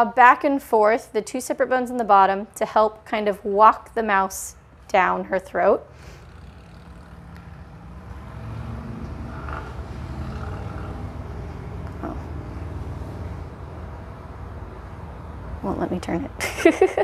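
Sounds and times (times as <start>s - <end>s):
low mechanical rumble: 6.1s - 16.3s.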